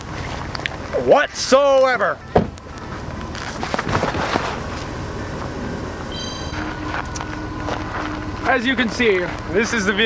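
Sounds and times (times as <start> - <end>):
car engine running: 3.1 - 10.0
high steady tone: 4.5 - 8.6.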